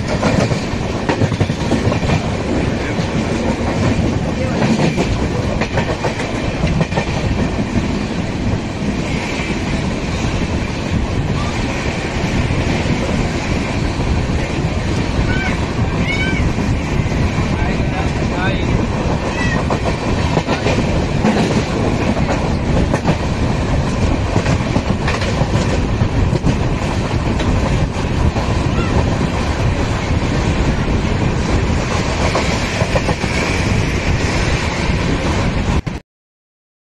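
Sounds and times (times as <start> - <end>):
clacks over rail joints: 0.0 - 8.6, 17.8 - 28.5
train wheels rumbling on track: 0.0 - 36.0.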